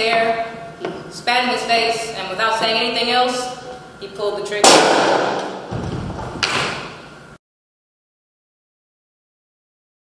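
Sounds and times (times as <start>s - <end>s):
loud sharp bang echoing in hall: 4.6s - 7.0s.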